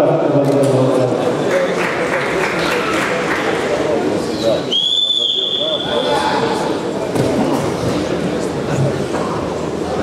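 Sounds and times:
voices in a hall: 0.0s - 10.0s
referee's whistle blast: 4.7s - 6.2s.

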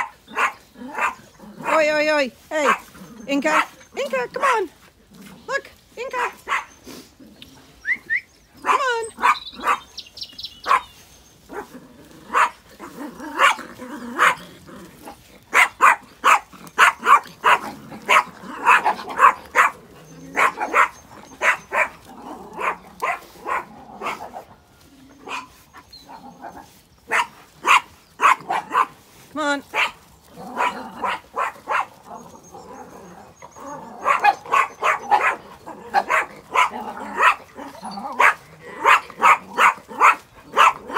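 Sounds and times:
small dog yapping: 0.0s - 1.8s, 6.2s - 6.8s, 8.6s - 9.9s, 10.6s - 10.9s, 12.3s - 14.4s, 15.5s - 24.4s, 25.2s - 26.2s, 27.1s - 28.9s, 30.6s - 32.3s, 33.5s - 40.9s.

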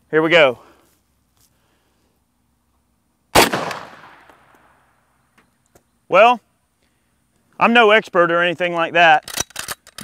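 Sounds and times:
rifle shot with echo: 3.3s - 4.8s.

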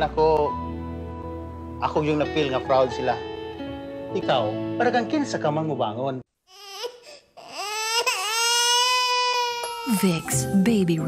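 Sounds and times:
baby fussing and crying: 6.5s - 10.2s.

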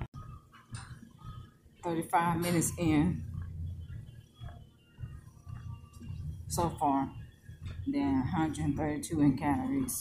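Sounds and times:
treadmill motor and belt hum: 0.0s - 10.0s
soft footfalls on treadmill belt: 0.1s - 10.0s.

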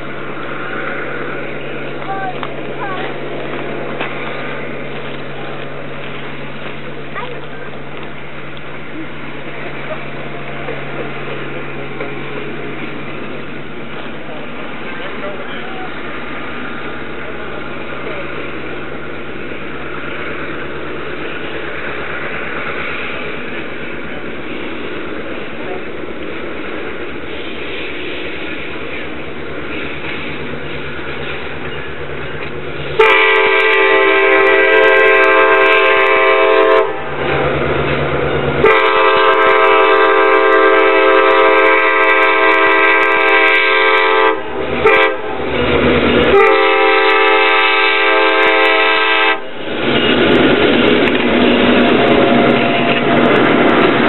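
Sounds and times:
diesel locomotive running: 0.0s - 54.0s
train air horn: 33.0s - 37.1s, 38.6s - 45.4s, 46.3s - 49.5s.

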